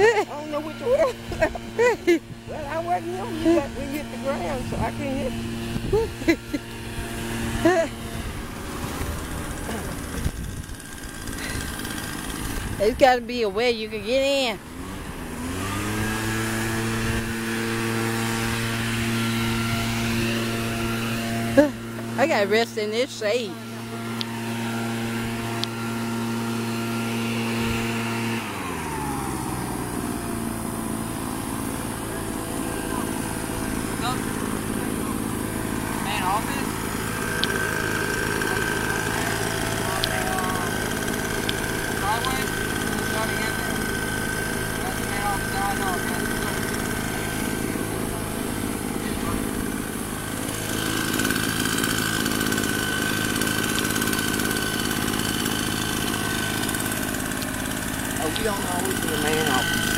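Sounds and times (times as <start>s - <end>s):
motor droning hum: 0.0s - 59.9s.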